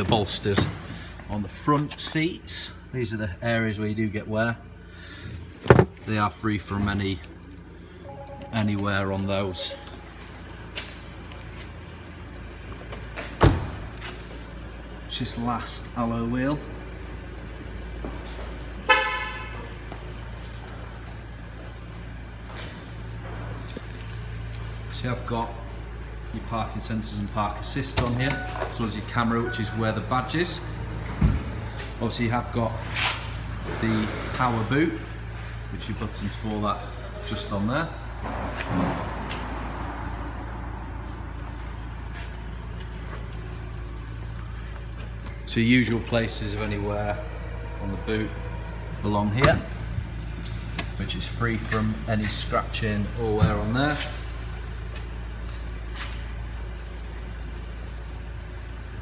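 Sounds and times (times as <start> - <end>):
steady low hum: 0.0 - 59.0
short car horn toot: 18.9 - 19.7.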